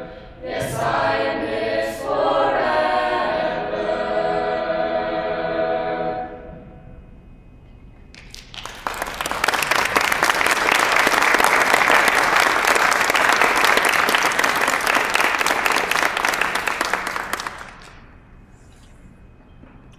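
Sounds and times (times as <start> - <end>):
person clapping close by: 8.1 - 18.0
audience applause: 8.2 - 18.0.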